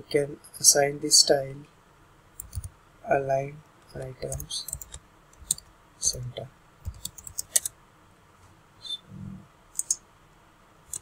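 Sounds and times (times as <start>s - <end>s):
keyboard and mouse clicks: 2.4s - 2.7s, 3.8s - 5.7s, 6.8s - 7.7s, 9.8s - 10.0s.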